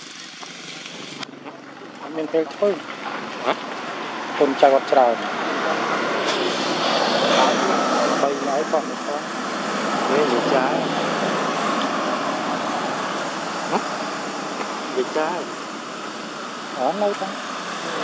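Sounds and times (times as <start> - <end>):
vehicle passing on road: 0.0 - 18.0.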